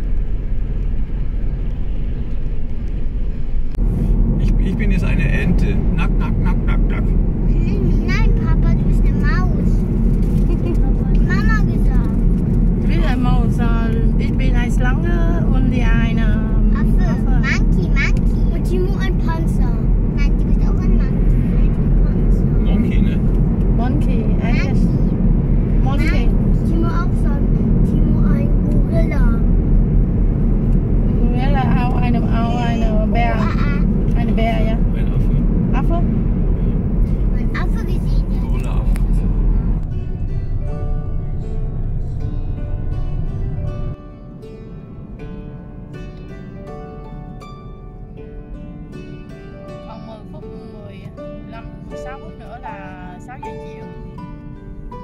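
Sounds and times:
car road and engine rumble: 0:00.0 - 0:55.0
people talking: 0:04.4 - 0:09.8, 0:10.5 - 0:12.2, 0:12.8 - 0:23.2, 0:23.8 - 0:25.0, 0:25.8 - 0:29.4, 0:31.1 - 0:36.1, 0:37.4 - 0:39.0, 0:49.9 - 0:53.8
plucked-string background music: 0:07.8 - 0:55.0.

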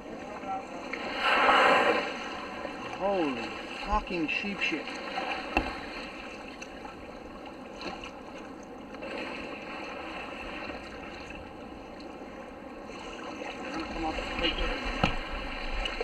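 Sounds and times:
water lapping against a hull: 0:00.0 - 0:16.0.

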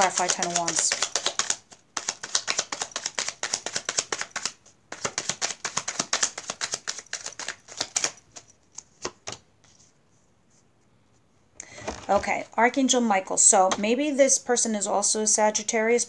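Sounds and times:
cards shuffled by hand: 0:00.0 - 0:09.9.

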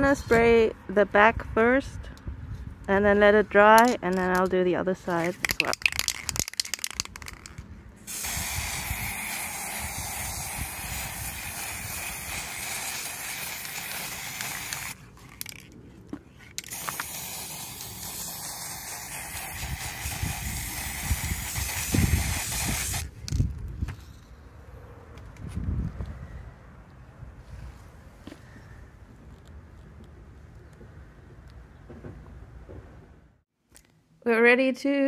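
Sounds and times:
spray paint can hissing: 0:05.2 - 0:15.6, 0:16.6 - 0:23.4
low bumps: 0:27.3 - 0:33.4.

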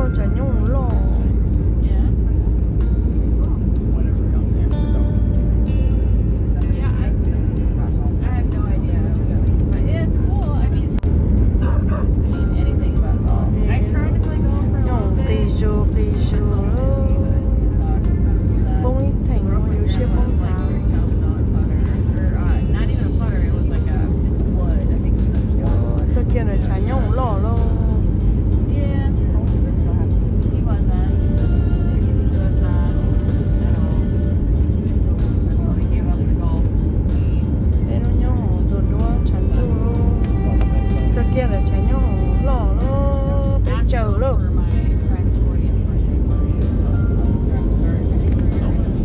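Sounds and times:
instrumental music: 0:00.0 - 0:49.0
jet airliner cabin rumble: 0:00.0 - 0:49.0
person singing: 0:14.7 - 0:18.0, 0:38.9 - 0:44.5.

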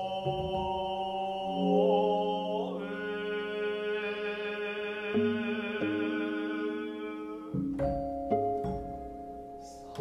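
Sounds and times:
sutra chanting: 0:00.0 - 0:07.6.

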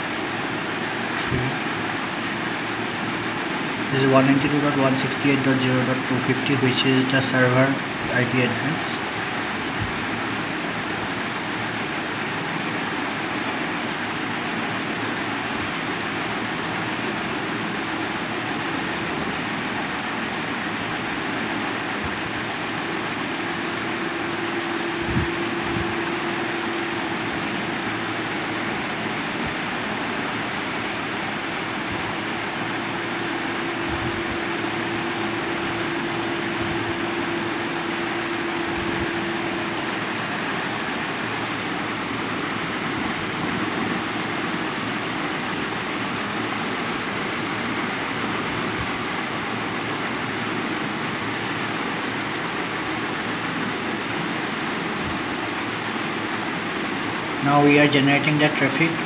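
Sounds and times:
faint hum: 0:00.0 - 0:59.0
steady rushing noise: 0:00.0 - 0:59.0.

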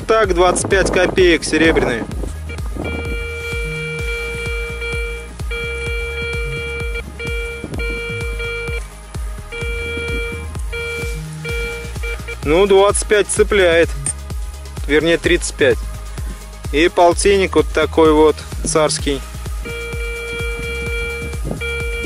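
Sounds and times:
metal detector beeping: 0:02.5 - 0:08.8, 0:09.5 - 0:12.6, 0:19.6 - 0:22.0.

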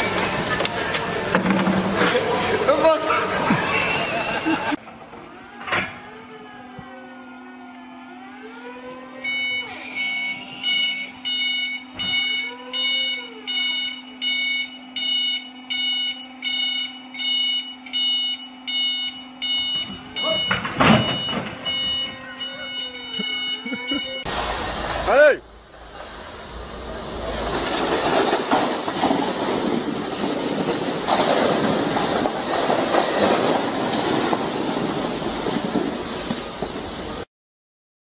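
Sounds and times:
forklift warning beeper: 0:09.2 - 0:24.4.

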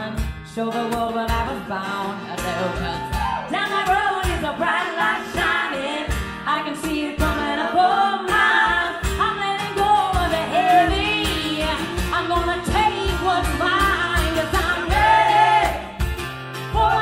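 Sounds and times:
woman singing backing vocal: 0:00.0 - 0:16.0, 0:16.6 - 0:17.0
strummed acoustic guitar: 0:00.0 - 0:17.0
woman singing lead: 0:00.0 - 0:17.0
percussion beat: 0:02.4 - 0:04.6, 0:08.6 - 0:17.0.

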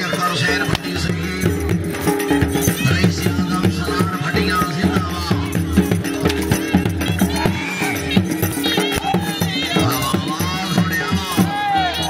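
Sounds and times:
drums beating fast rhythm: 0:00.0 - 0:12.0.

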